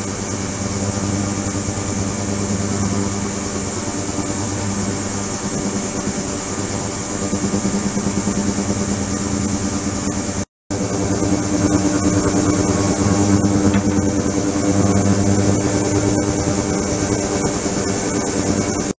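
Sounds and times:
ultrasonic cleaner buzzing hiss: 0.0 - 18.9.

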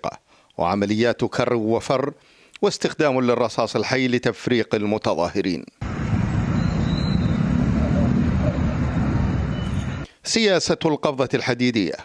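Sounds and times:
steady low rumble: 5.8 - 10.1.

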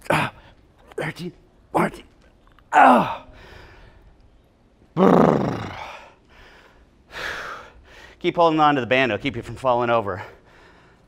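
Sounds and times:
man grunting with strain: 2.7 - 3.3, 5.0 - 6.1.

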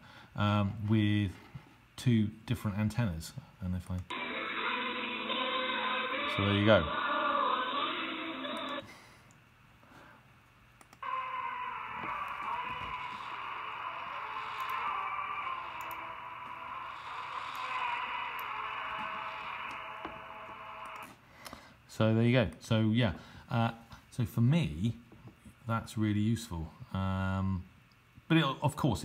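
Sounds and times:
shortwave radio broadcast: 4.1 - 8.8
radio hiss: 4.1 - 8.9.

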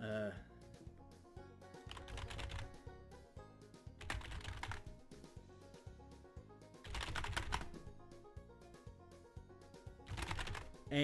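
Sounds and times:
background music with a beat: 0.6 - 11.0
computer keyboard typing: 1.9 - 2.7, 4.0 - 4.9, 6.9 - 7.8, 10.1 - 10.8.

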